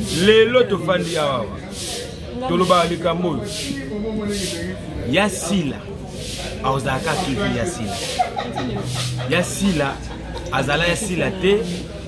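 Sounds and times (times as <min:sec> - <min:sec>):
man talking: 0:00.0 - 0:01.9, 0:02.5 - 0:08.2, 0:09.2 - 0:11.8.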